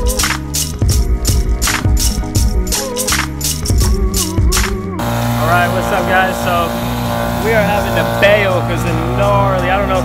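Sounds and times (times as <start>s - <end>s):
music with beat and vocal: 0.0s - 6.6s
outboard motor running: 3.7s - 10.0s
man talking: 5.4s - 6.8s, 7.4s - 10.0s.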